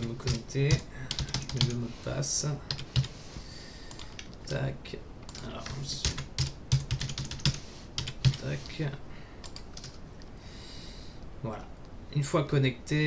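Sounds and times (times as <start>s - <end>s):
typing on computer keyboard: 0.2s - 1.8s, 2.7s - 3.1s, 3.9s - 4.4s, 5.3s - 8.4s, 9.4s - 10.0s.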